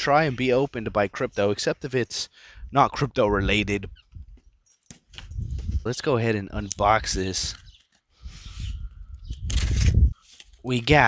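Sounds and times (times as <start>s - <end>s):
knife scraping packing tape: 9.4s - 10.5s.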